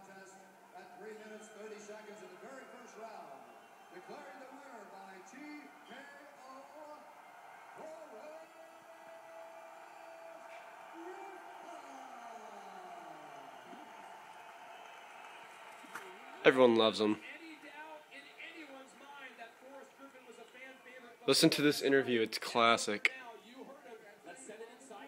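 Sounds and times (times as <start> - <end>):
man announcing over tv speaker: 0.0 - 7.2, 7.8 - 9.1, 11.0 - 12.8, 16.2 - 25.0
arena crowd noise: 0.0 - 25.0.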